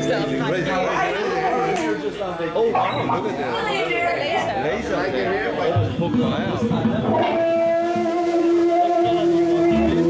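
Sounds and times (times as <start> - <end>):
electric guitar sustained note: 7.1 - 10.0.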